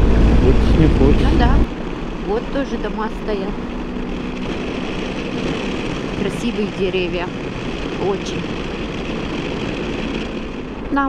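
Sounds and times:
motorcycle engine cruising: 0:00.0 - 0:11.0
tyre and wind noise: 0:03.5 - 0:11.0.

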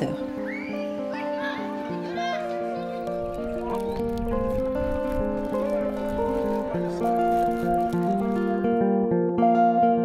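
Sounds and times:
slow melody of held notes: 0:00.0 - 0:10.0.

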